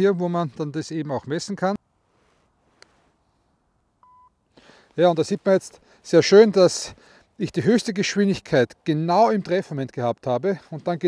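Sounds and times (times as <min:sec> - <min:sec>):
short electronic beep: 0:04.0 - 0:04.4.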